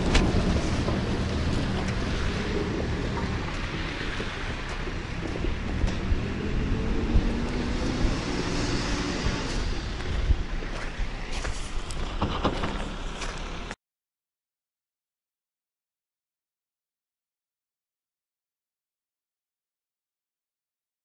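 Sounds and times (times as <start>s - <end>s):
backhoe engine running: 0.0s - 13.8s.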